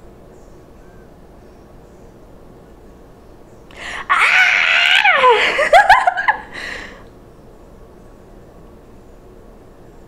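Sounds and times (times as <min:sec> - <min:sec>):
woman shrieking: 0:03.8 - 0:06.4.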